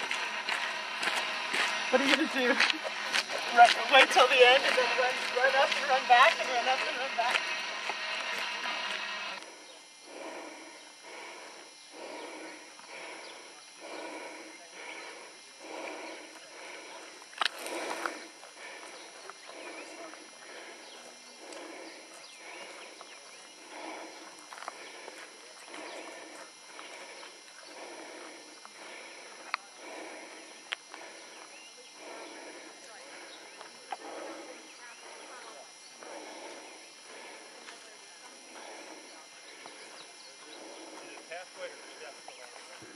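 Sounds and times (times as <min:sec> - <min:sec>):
footsteps crunching on gravel: 0:00.0 - 0:09.5, 0:15.7 - 0:35.4.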